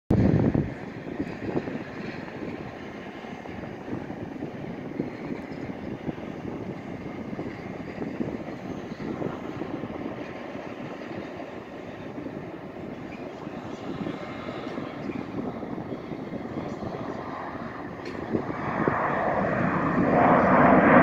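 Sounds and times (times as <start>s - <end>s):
distant jet engines rumbling: 0.1s - 21.0s.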